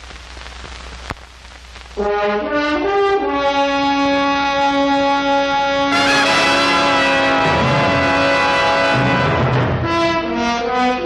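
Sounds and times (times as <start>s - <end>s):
film soundtrack hiss and crackle: 0.0s - 11.0s.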